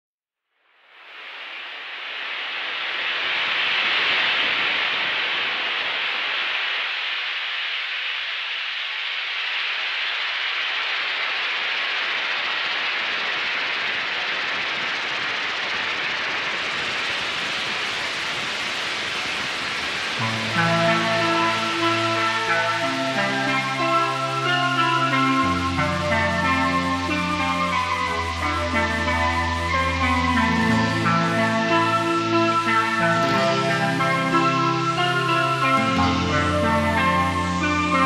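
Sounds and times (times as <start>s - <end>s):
steady rushing hiss: 0.6s - 38.0s.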